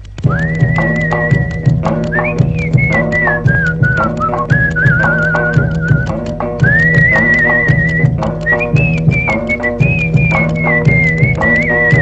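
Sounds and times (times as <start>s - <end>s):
rhythmic backing music: 0.0s - 12.0s
whistled tune: 0.2s - 12.0s.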